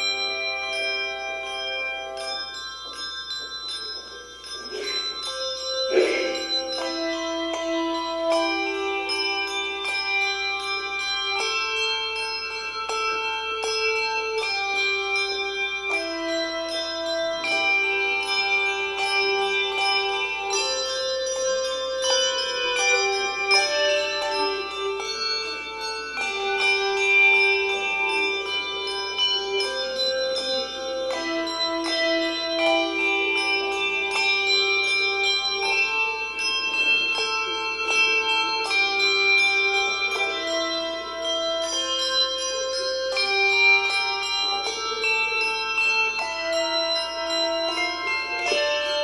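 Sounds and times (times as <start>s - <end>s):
handbell choir playing chords: 0.0s - 49.0s.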